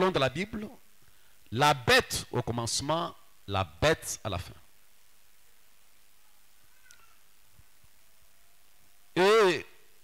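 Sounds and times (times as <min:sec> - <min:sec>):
faint room tone hiss: 0:00.0 - 0:10.0.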